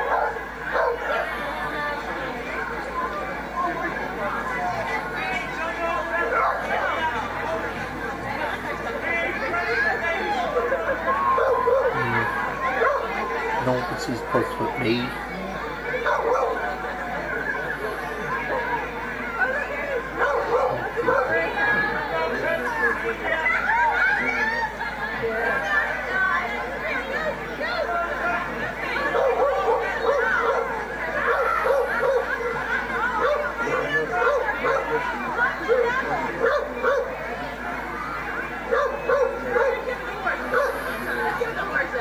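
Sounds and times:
crowd chatter: 0:00.0 - 0:42.0.

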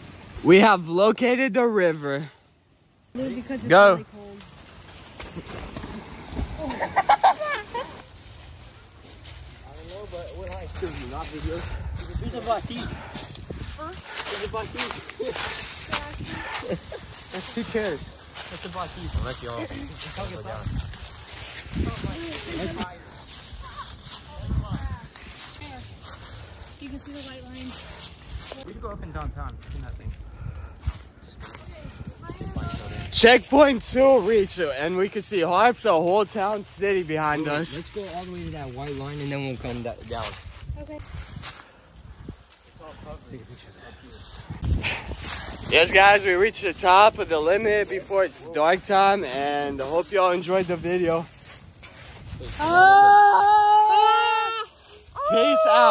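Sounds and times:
person laughing: 0:06.6 - 0:08.0.

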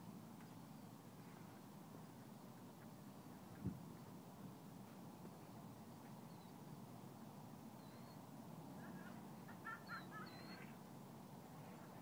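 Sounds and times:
low outdoor hiss: 0:00.0 - 0:12.0
faint bird calls: 0:07.8 - 0:10.9.

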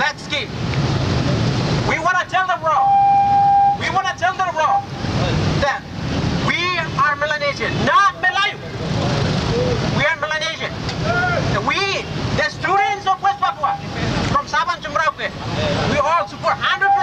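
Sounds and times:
man speaking through megaphone: 0:01.8 - 0:09.0, 0:09.9 - 0:10.8, 0:11.4 - 0:17.0.

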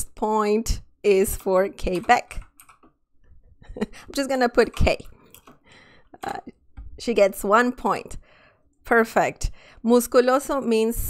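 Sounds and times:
computer keyboard key clicks: 0:02.0 - 0:02.9.

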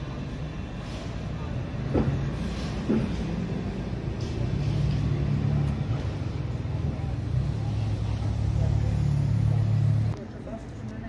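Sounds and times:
street noise: 0:00.0 - 0:11.0
vehicle engine humming: 0:00.0 - 0:11.0.

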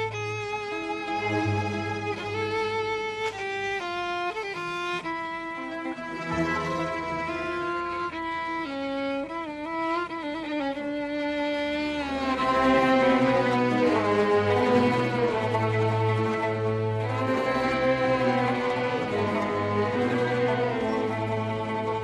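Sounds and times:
violins playing in unison: 0:00.0 - 0:22.0.

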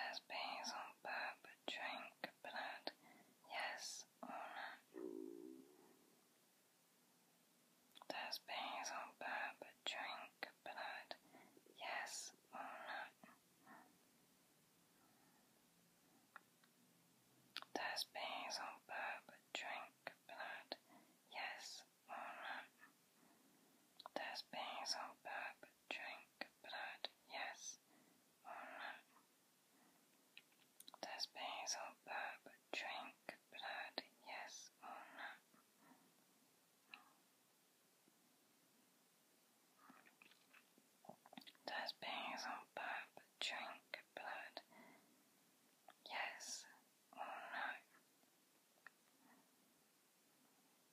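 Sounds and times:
person whispering: 0:00.0 - 0:05.8, 0:08.0 - 0:13.9, 0:17.6 - 0:23.0, 0:24.0 - 0:27.8, 0:28.4 - 0:29.2, 0:30.9 - 0:35.5, 0:41.1 - 0:44.7, 0:45.9 - 0:48.0.

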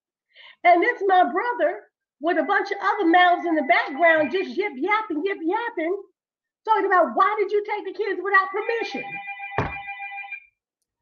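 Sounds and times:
phone ringtone chord: 0:08.6 - 0:10.5
knock: 0:09.6 - 0:09.8.

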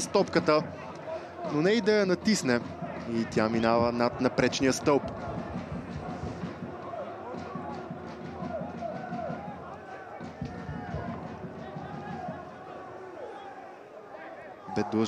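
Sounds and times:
stadium crowd shouting: 0:00.0 - 0:15.0.

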